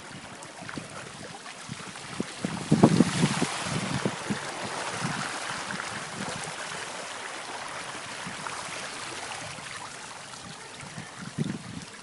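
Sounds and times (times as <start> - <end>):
floodwater splashing and rushing: 0.0 - 12.0
wind buffeting microphone: 0.0 - 12.0.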